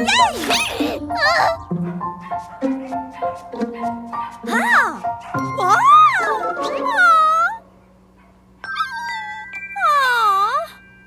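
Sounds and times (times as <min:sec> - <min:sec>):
cartoon puppy whimpering: 0:00.0 - 0:01.7, 0:04.5 - 0:07.6, 0:08.7 - 0:10.7.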